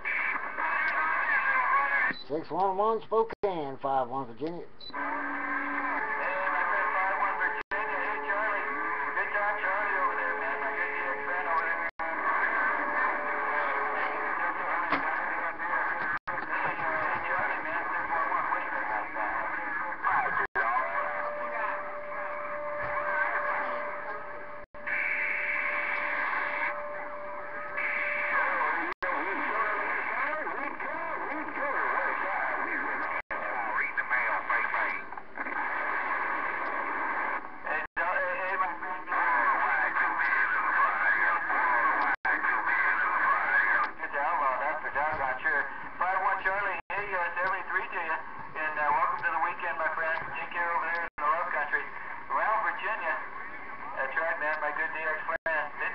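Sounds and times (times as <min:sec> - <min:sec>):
radio static: 0:00.0 - 0:02.8, 0:04.9 - 0:55.9
weak garbled radio voices: 0:00.0 - 0:55.9
carrier whistle tones: 0:04.8 - 0:09.0, 0:20.6 - 0:29.2.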